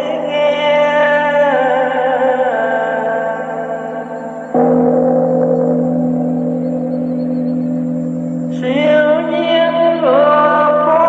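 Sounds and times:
chanting or music: 0:00.0 - 0:11.0
gong ringing: 0:03.4 - 0:11.0.

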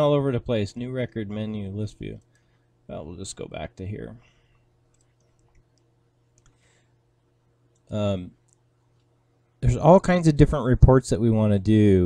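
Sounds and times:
low steady hum: 0:00.0 - 0:12.0
computer keyboard and mouse clicks: 0:04.9 - 0:06.6.

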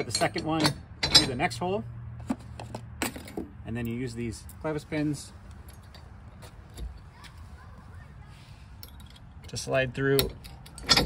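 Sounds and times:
metal hitch parts clicking: 0:00.0 - 0:04.8, 0:05.4 - 0:07.1, 0:08.7 - 0:11.0.

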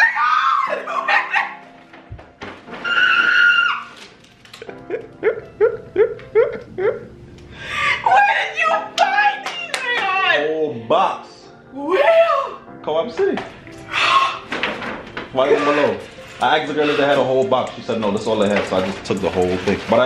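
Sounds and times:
woman shrieking and crying: 0:00.0 - 0:01.6, 0:02.8 - 0:03.9, 0:05.2 - 0:07.1, 0:07.7 - 0:10.5, 0:11.7 - 0:12.7
soft background music: 0:00.0 - 0:20.0
woman shouting excitedly: 0:08.0 - 0:10.5, 0:11.8 - 0:12.6.

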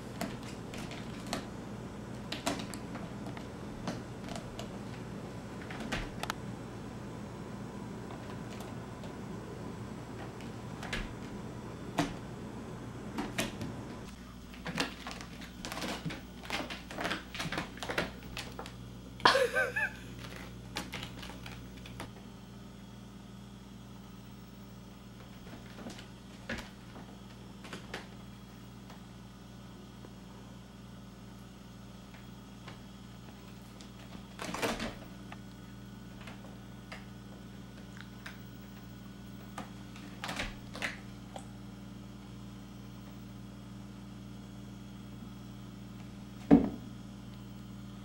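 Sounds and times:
low steady hum: 0:00.0 - 0:48.0.

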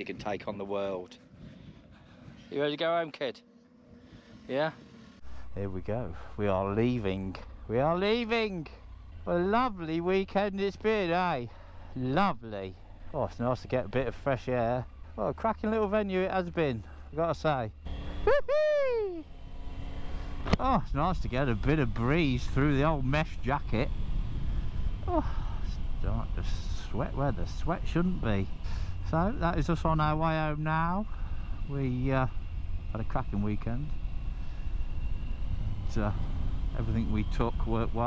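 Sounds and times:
wind on microphone: 0:00.0 - 0:02.5
motorcycle engine running: 0:03.6 - 0:38.0.

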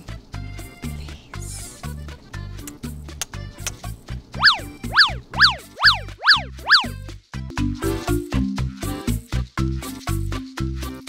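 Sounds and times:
background music with bass: 0:00.0 - 0:11.0
electronic pitch-sweep effect: 0:04.4 - 0:07.0.

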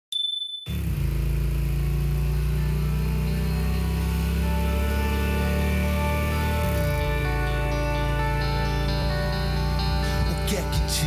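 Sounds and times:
motorcycle engine running: 0:00.7 - 0:11.0
music: 0:01.9 - 0:11.0.

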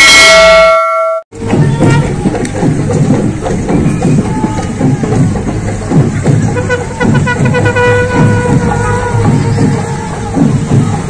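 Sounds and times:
bell chime: 0:00.0 - 0:01.2
busy outdoor crowd: 0:00.0 - 0:11.0
music: 0:01.4 - 0:11.0.

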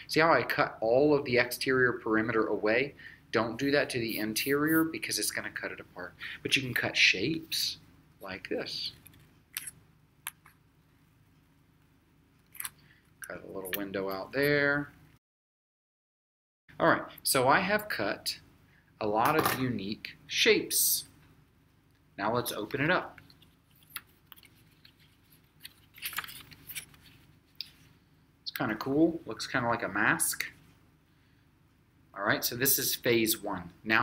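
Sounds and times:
paper rustling and crackling: 0:23.4 - 0:27.4.

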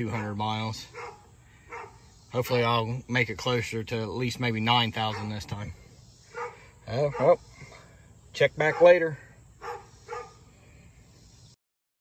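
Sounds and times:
faint background noise: 0:00.0 - 0:11.6.

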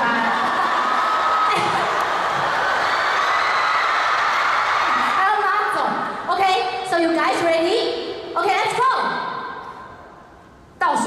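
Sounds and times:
audience cheering and whooping: 0:00.0 - 0:05.4.

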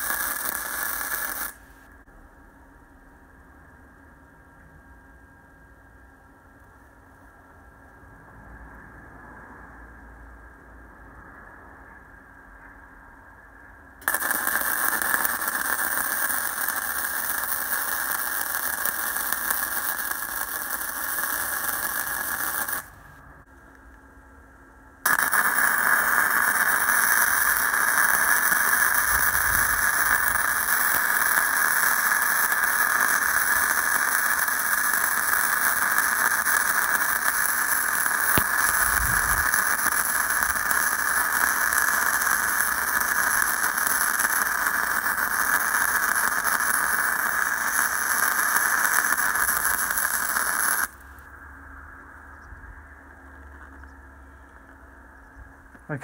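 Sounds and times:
welding arc crackling: 0:00.0 - 0:01.9, 0:14.0 - 0:23.2, 0:25.0 - 0:51.4.

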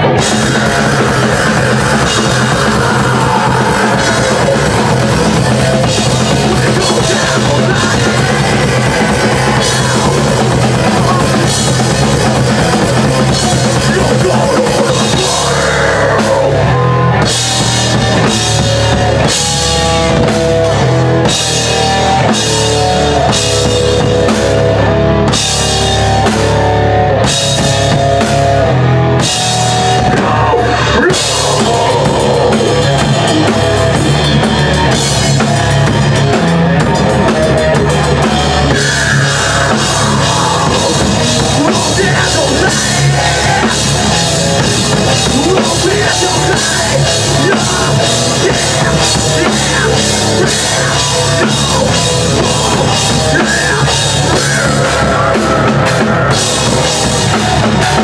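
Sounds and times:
distorted electric guitars: 0:00.0 - 0:58.0
fast drum kit: 0:00.0 - 0:58.0
metal band playing live: 0:00.0 - 0:58.0.

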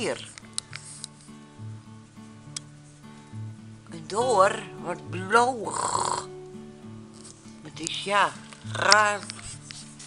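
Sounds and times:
soft background music: 0:00.0 - 0:10.0
sharp click: 0:02.5 - 0:02.7.

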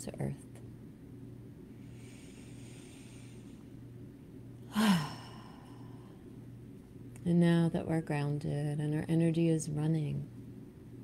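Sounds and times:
low steady hum: 0:00.0 - 0:11.0
woman breathing in: 0:01.7 - 0:03.8, 0:04.7 - 0:06.3
woman sighing: 0:04.7 - 0:06.1.

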